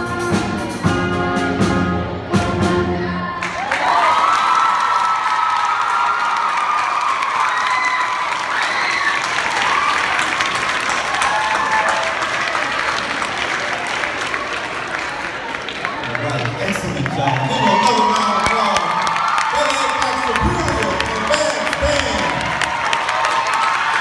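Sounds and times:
crowd cheering: 3.2s - 24.0s
audience applauding: 3.4s - 24.0s.

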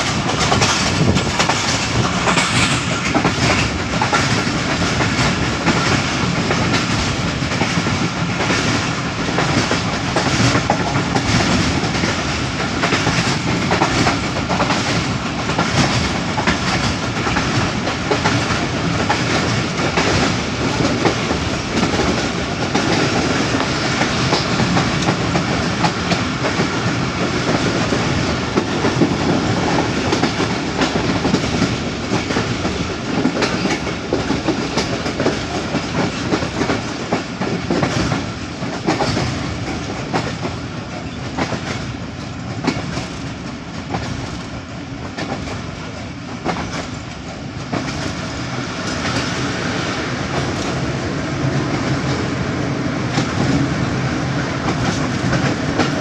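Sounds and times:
wheels clicking over rail joints: 0.0s - 49.6s
train wheels rumbling on track: 0.0s - 56.0s.

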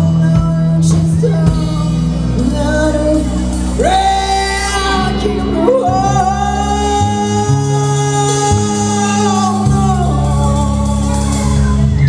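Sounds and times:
live rock band: 0.0s - 12.0s
man singing long notes: 0.0s - 12.0s.

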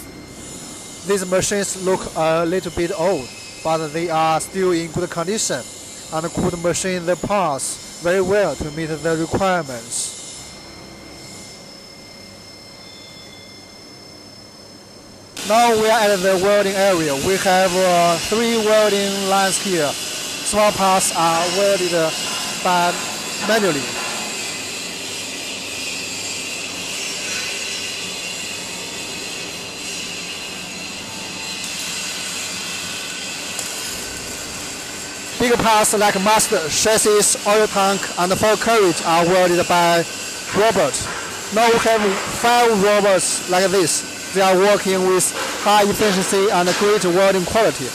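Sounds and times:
faint high whines: 0.0s - 45.3s
milling machine hiss: 0.0s - 47.9s
faint steady high tones: 7.6s - 24.8s.

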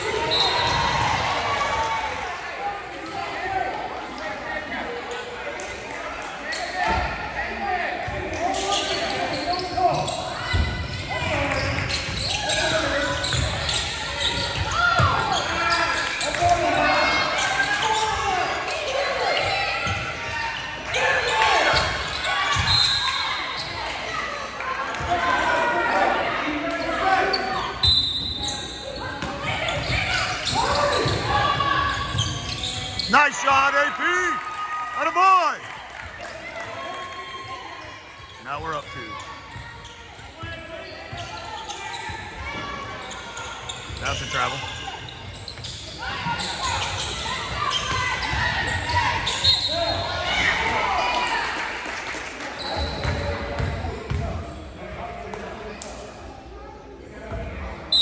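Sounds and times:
sneakers squeaking: 0.0s - 2.2s, 6.4s - 7.3s, 8.0s - 35.2s, 37.8s - 51.3s, 52.6s - 54.8s.

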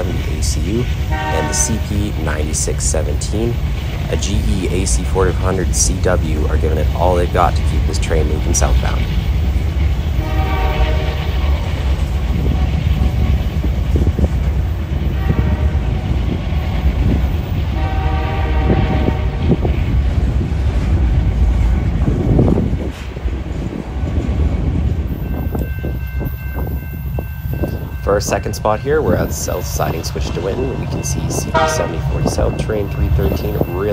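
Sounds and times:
locomotive engine rumble: 0.0s - 33.9s
rolling rail noise: 0.0s - 33.9s
train horn: 1.1s - 1.9s, 10.2s - 11.4s, 15.1s - 16.0s, 17.8s - 19.6s, 31.5s - 32.2s.

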